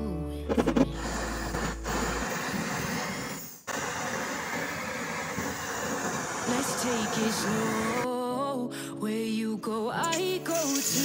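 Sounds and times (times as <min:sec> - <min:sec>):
torch flame hissing: 0:00.6 - 0:08.1, 0:10.1 - 0:11.0.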